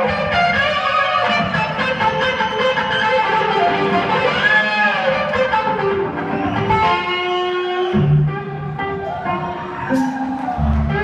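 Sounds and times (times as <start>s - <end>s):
electric guitar lead bending notes: 0.0s - 11.0s.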